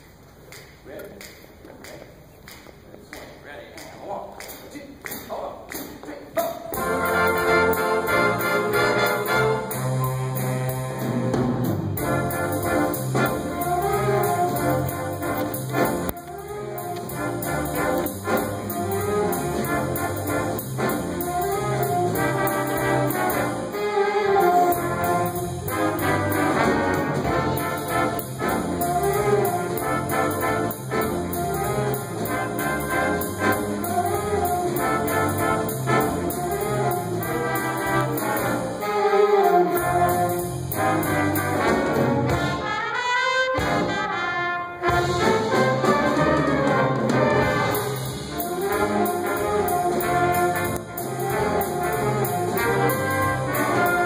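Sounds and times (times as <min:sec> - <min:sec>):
jazz big band playing: 0:06.4 - 0:54.0.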